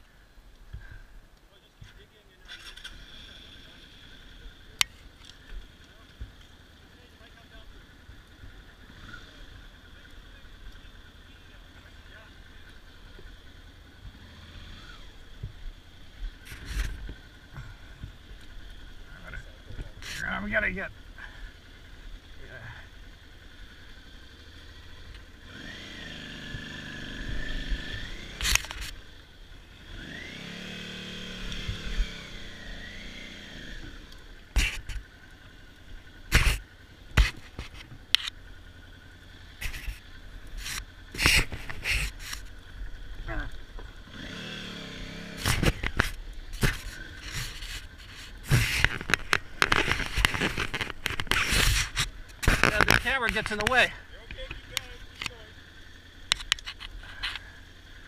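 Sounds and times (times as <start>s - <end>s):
motorcycle engine revving: 1.8s - 58.0s
motorcycle knocking over rocks: 45.4s - 55.3s.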